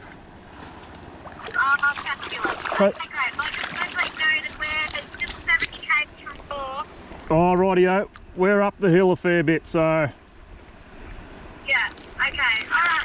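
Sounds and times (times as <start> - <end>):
wind: 0.0 - 13.0
woman talking through phone speaker: 11.7 - 13.0.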